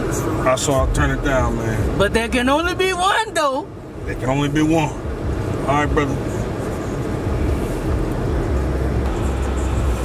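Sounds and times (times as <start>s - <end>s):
car road and engine noise: 0.0s - 10.0s
deep bass line from stereo: 7.3s - 10.0s.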